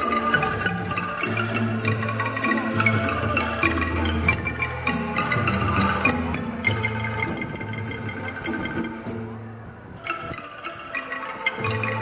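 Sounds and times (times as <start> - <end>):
shaken bamboo tubes tremolo: 0.0 - 12.0.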